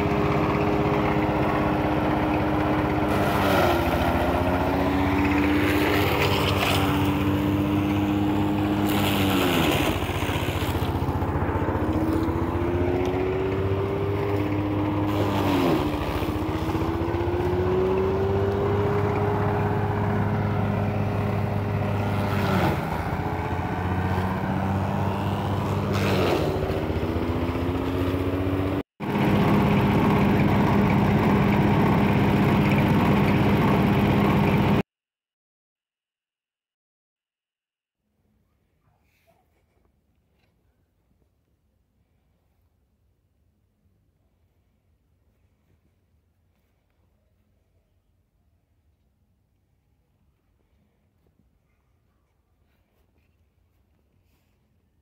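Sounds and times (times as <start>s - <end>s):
forage chopper engine running: 0.0s - 34.8s.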